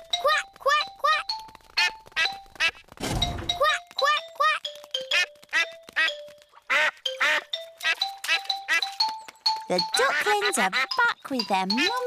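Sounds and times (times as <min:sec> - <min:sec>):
background music: 0:00.0 - 0:12.0
cartoon ducks quacking: 0:00.2 - 0:02.8, 0:03.6 - 0:08.9, 0:09.8 - 0:12.0.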